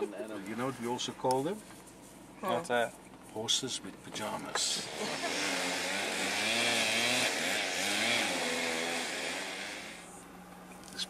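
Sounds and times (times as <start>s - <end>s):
vehicle engine running: 3.4s - 11.0s.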